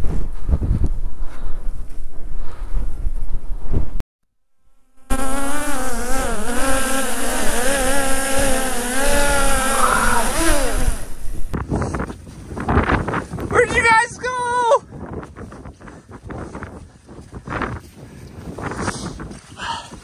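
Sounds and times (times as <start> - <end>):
drone propellers buzzing: 4.9 - 11.6.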